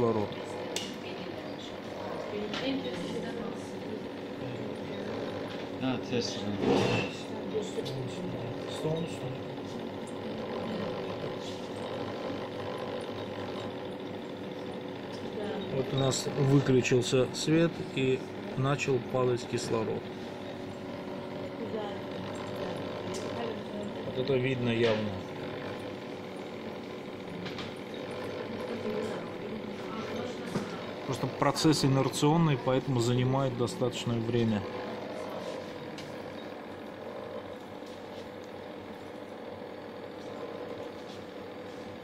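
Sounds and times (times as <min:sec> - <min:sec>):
steady machine hum with tones: 0:00.0 - 0:42.0.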